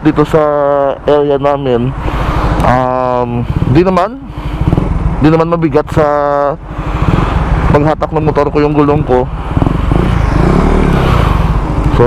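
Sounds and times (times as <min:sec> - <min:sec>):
motorcycle engine idling: 0:02.0 - 0:12.0
vehicle passing on road: 0:06.6 - 0:12.0.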